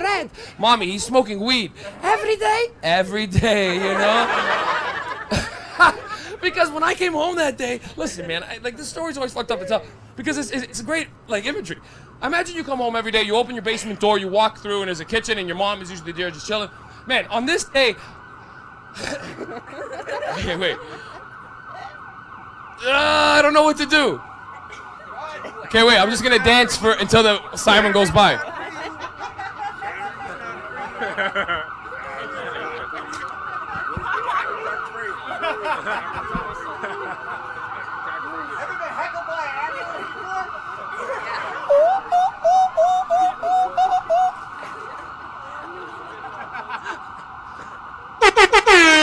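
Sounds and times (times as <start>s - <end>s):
emergency vehicle siren: 0.0s - 49.0s
crowd laughing: 3.4s - 7.0s, 19.0s - 22.0s, 24.5s - 49.0s.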